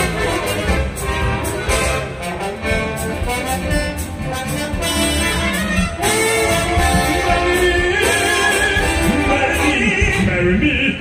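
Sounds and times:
symphony orchestra playing: 0.0s - 11.0s.

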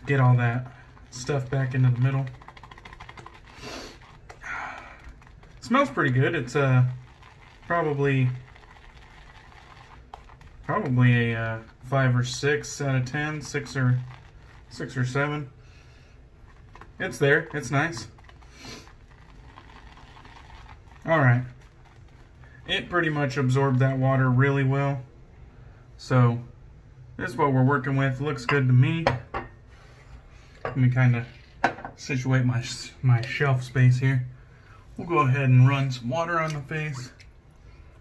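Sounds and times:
shaving brush lathering soap: 0.0s - 24.4s, 35.0s - 37.4s
person sniffing: 3.5s - 5.0s, 18.5s - 18.9s
shaving brush swishing in lather: 5.6s - 15.4s.

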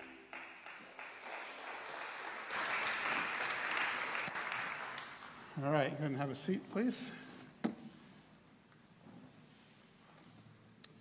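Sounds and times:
congregation applauding: 0.0s - 5.6s
man speaking: 5.6s - 7.4s.

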